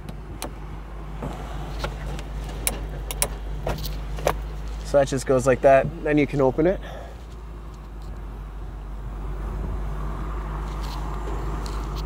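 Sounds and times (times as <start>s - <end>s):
low cabin hum: 0.0s - 11.6s
latch and plastic trim clicking: 1.8s - 3.4s.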